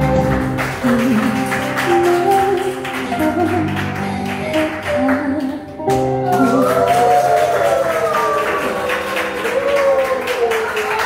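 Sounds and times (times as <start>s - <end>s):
ballroom dance music: 0.0s - 7.4s.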